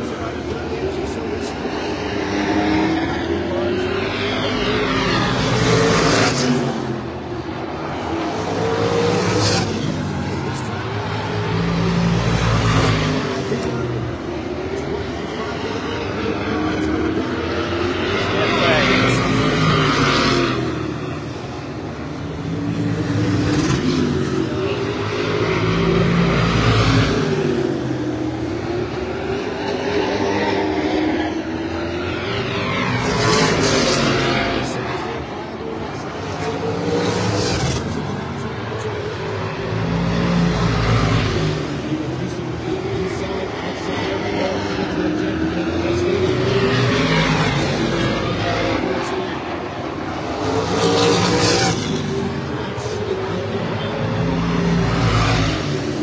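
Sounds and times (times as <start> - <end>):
race car engines passing: 0.0 - 56.0.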